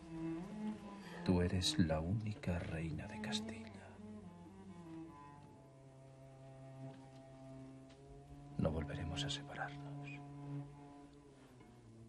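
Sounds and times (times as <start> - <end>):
low bowed strings: 0.0 - 12.0.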